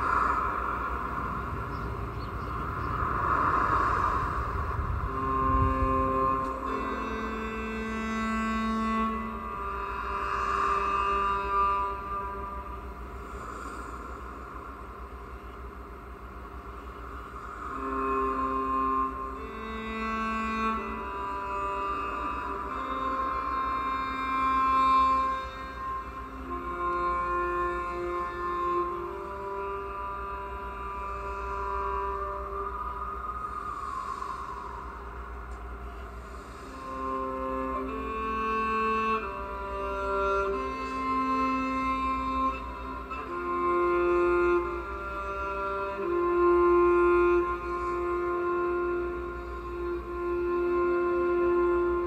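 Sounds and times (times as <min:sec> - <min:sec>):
cello bowed notes: 0:00.0 - 0:52.0
low hum and hiss: 0:00.0 - 0:52.0
rushing noise: 0:00.0 - 0:52.0.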